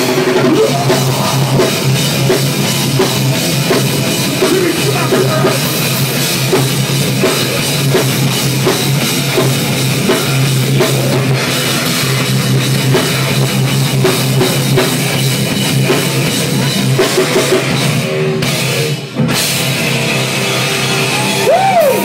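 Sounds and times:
distorted electric guitar: 0.0 - 22.0
drum kit pounding: 0.0 - 22.0.

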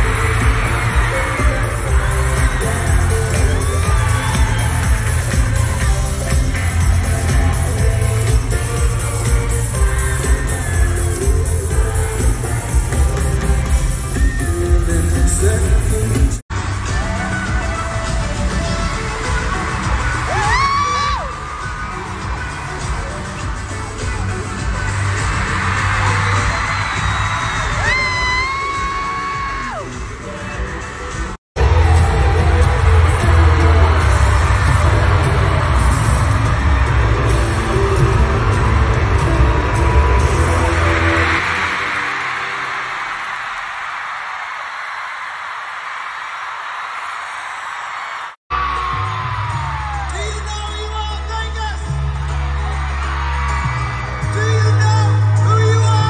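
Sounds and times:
crowd cheering: 0.0 - 15.6, 16.5 - 56.0
fans screaming: 0.0 - 15.7, 16.6 - 56.0
loud pop-rock band: 0.0 - 43.6, 48.5 - 56.0.

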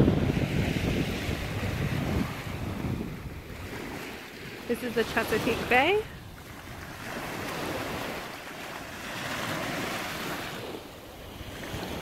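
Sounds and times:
small waves washing onto sand: 0.0 - 12.0
wind on microphone: 0.0 - 12.0.

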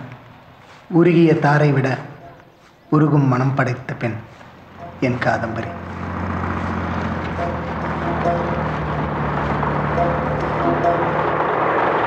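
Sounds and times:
rough machinery noise: 4.2 - 12.0
low engine drone: 4.6 - 12.0
soft music notes: 4.7 - 11.5.

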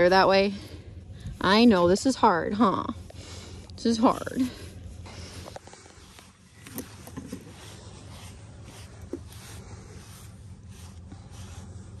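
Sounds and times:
brush stroking horse coat: 0.0 - 0.5, 1.4 - 3.1, 3.8 - 12.0
low steady rumble: 0.0 - 12.0.

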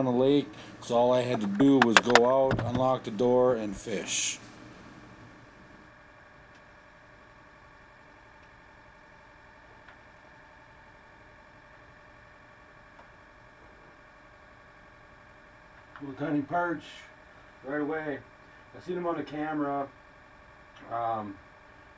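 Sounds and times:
faint steady hum: 0.0 - 21.9.

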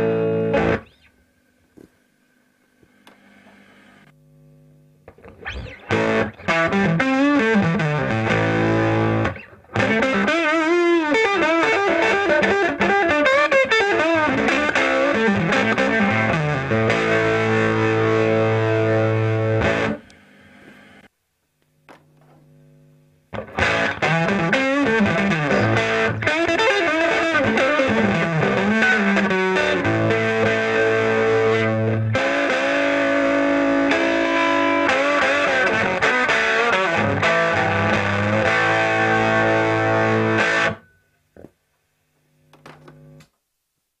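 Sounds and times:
electric guitar through valve amp: 0.0 - 43.4
faint amplifier hum: 0.0 - 44.0
guitar handling sounds: 5.0 - 21.0, 21.6 - 22.6, 42.5 - 43.4.

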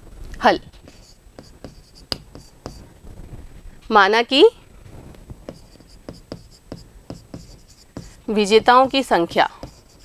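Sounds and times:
stylus tapping and scratching: 0.7 - 2.9, 5.1 - 10.0.

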